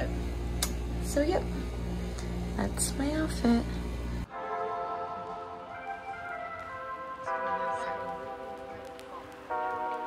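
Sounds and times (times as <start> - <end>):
soft sustained chords: 0.0 - 10.0.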